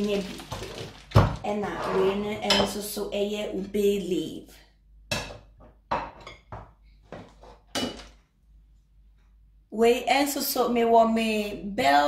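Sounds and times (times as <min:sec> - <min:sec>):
woman talking: 0:00.0 - 0:00.7, 0:01.4 - 0:04.6, 0:09.7 - 0:12.0
plastic bag crinkling: 0:00.0 - 0:02.2
ceramic plate knocking on countertop: 0:05.1 - 0:08.0.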